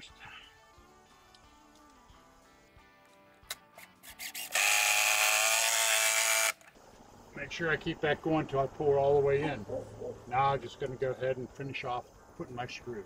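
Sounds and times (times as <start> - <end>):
cordless drill driving screw: 4.0 - 6.6.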